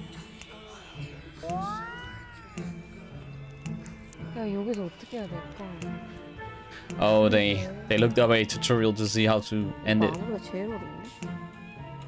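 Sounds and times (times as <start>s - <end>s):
soft background music: 0.0s - 12.0s
high-pitched meow-like call: 1.4s - 2.8s.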